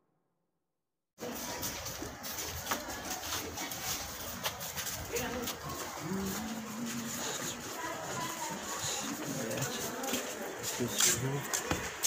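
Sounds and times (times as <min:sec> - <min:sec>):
crowd chatter: 0:01.2 - 0:12.0.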